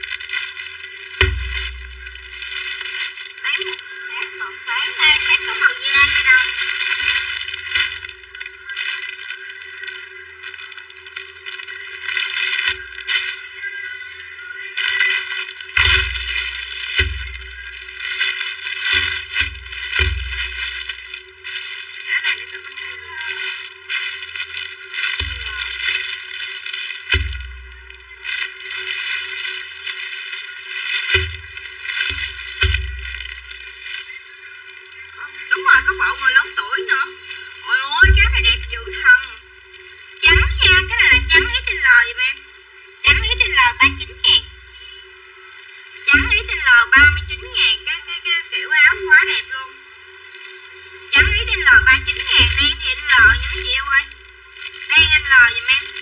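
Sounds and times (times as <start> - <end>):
plastic bags crinkling and tearing: 0.0 - 56.0.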